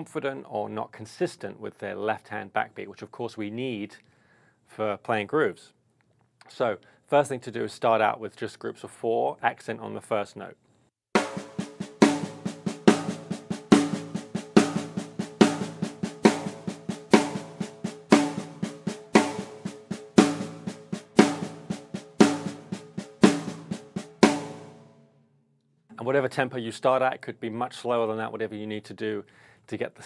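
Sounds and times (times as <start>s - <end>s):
snare drum rim shots and ghost strokes: 11.2s - 25.0s.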